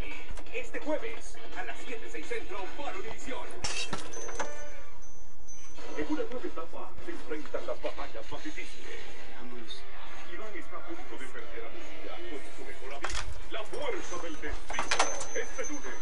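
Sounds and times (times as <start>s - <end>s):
music: 0.0s - 16.0s.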